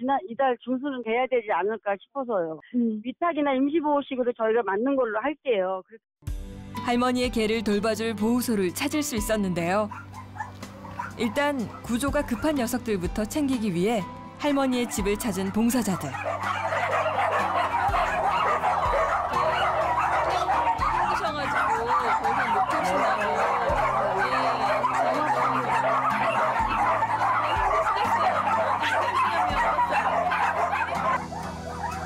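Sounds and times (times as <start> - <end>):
background music: 6.2 - 32.0
many dogs barking and yelping: 9.6 - 13.0, 14.5 - 32.0.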